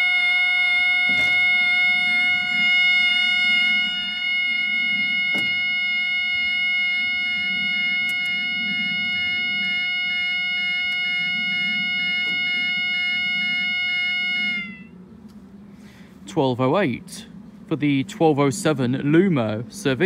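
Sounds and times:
level crossing alarm tone: 0:00.0 - 0:15.1.

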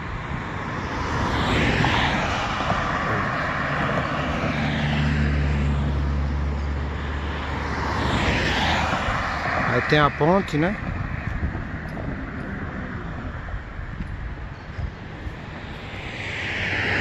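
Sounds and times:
road traffic rushing by: 0:00.0 - 0:17.0
low heavy vehicle engine hum: 0:10.5 - 0:17.0.

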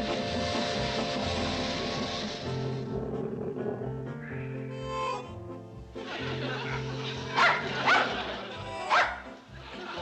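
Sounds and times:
background music: 0:00.0 - 0:10.0
dog barking: 0:07.4 - 0:08.2, 0:08.9 - 0:09.3.

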